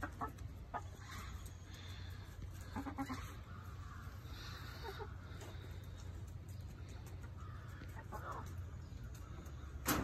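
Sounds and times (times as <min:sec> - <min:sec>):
hens clucking: 0:00.0 - 0:10.0.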